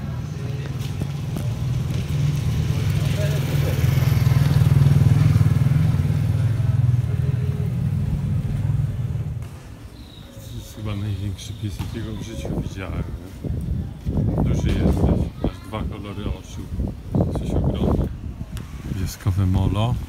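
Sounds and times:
small vehicle engine passing: 0:01.1 - 0:09.7.

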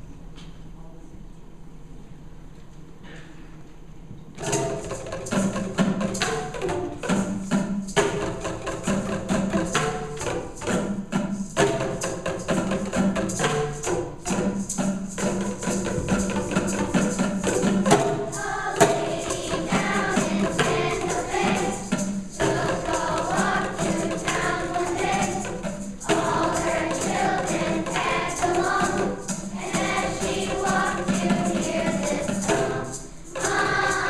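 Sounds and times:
plastic tubes struck rhythmically: 0:04.4 - 0:34.0
children's choir singing: 0:08.0 - 0:34.0.

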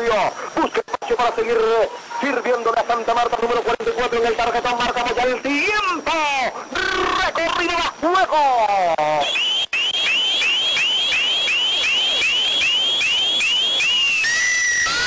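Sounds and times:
rising electronic chirps: 0:09.2 - 0:15.0
steady electronic tone: 0:09.2 - 0:15.0.

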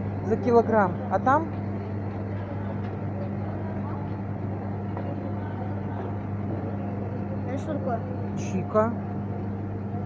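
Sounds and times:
faint murmur of voices: 0:00.0 - 0:10.0
low electrical hum: 0:00.0 - 0:10.0.

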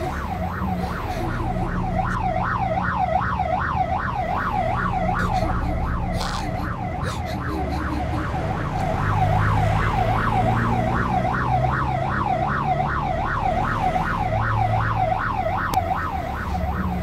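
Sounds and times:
ambulance siren wailing: 0:00.0 - 0:17.0.

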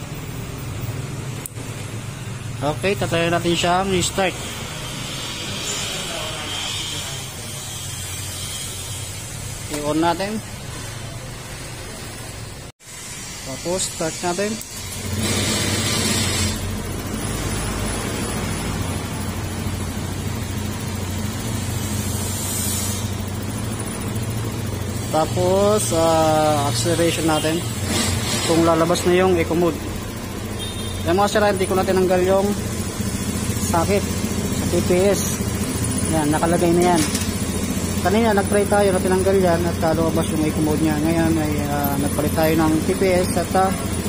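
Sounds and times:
scooter engine idling: 0:16.6 - 0:44.0.

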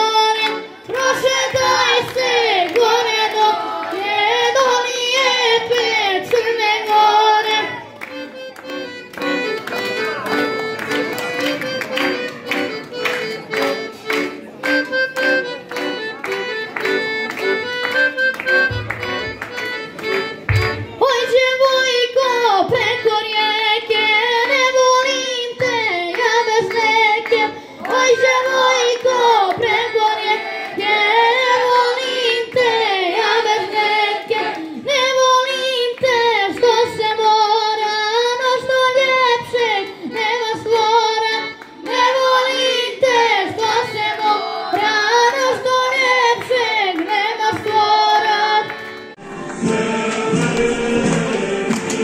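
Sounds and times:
boy singing into a microphone: 0:00.0 - 0:08.0, 0:20.6 - 0:49.0
accordion: 0:00.0 - 0:52.0.

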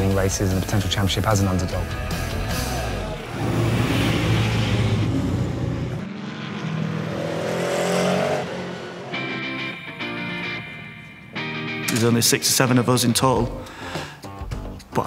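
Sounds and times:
background music: 0:00.0 - 0:06.2, 0:07.0 - 0:15.0
race car engine accelerating past: 0:02.6 - 0:09.6
guitar music: 0:08.5 - 0:14.9.

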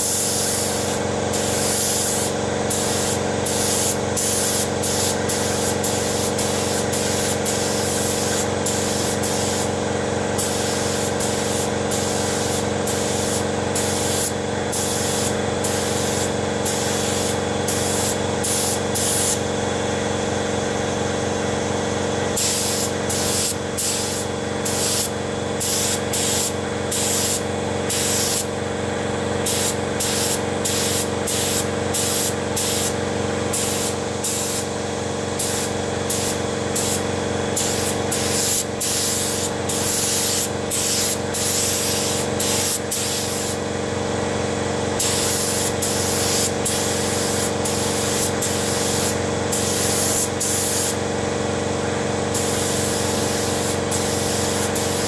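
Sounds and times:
paint spray gun hissing: 0:00.0 - 0:19.5, 0:22.3 - 0:28.6, 0:29.3 - 0:43.8, 0:44.9 - 0:51.0, 0:52.3 - 0:55.0
steady low hum: 0:21.0 - 0:43.9.

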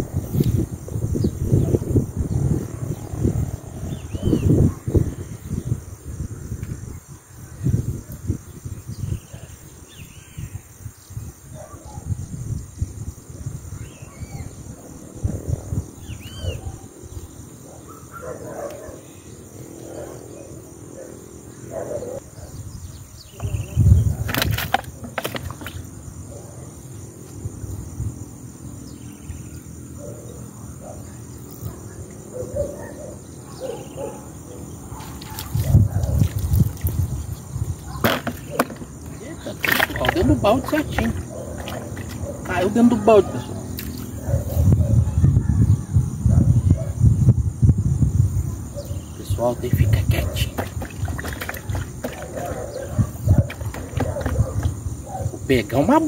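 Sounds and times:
bird chirps: 0:16.0 - 0:17.3
sharp thump and clatter: 0:24.2 - 0:25.9, 0:38.0 - 0:42.2
low rumble on microphone: 0:43.4 - 0:55.5.

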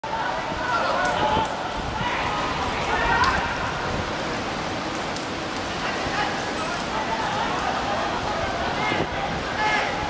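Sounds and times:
open-air noise: 0:00.0 - 0:10.0.

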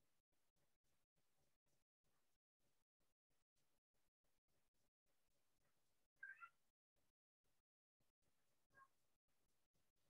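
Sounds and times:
faint high-pitched call: 0:06.2 - 0:06.6.

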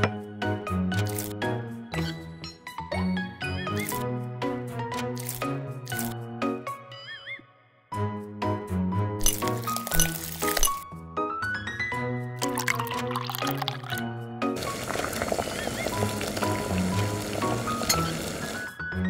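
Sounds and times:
plucked background music: 0:00.0 - 0:19.0
water boiling in wok: 0:14.6 - 0:18.7.

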